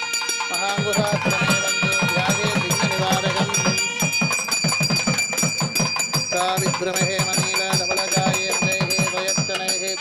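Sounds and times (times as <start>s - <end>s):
drum beating steadily: 0.0s - 10.0s
high bell-like ringing tone: 0.0s - 10.0s.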